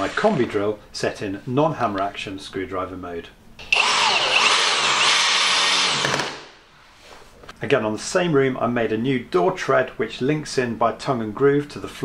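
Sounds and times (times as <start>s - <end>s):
cordless power tool driving screw: 3.6s - 6.5s.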